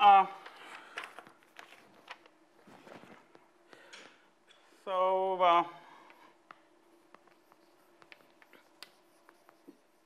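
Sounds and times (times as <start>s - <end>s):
chalk tapping and scratching: 6.5s - 10.0s.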